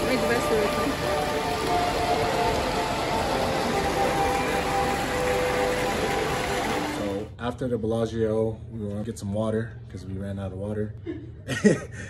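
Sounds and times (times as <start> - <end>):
fountain water rushing: 0.0 - 7.3
faint music: 0.0 - 12.0.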